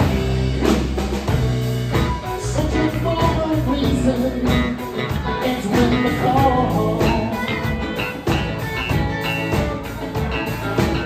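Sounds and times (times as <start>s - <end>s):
drum kit: 0.0s - 11.0s
electric bass: 0.0s - 11.0s
electric guitars: 0.0s - 11.0s.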